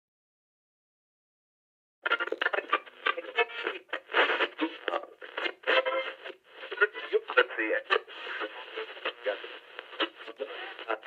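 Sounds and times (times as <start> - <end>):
lo-fi voice-like sample: 2.1 - 11.0.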